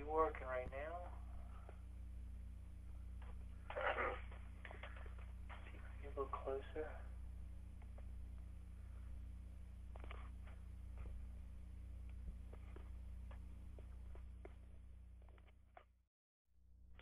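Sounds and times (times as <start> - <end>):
low electrical hum: 0.0 - 15.9.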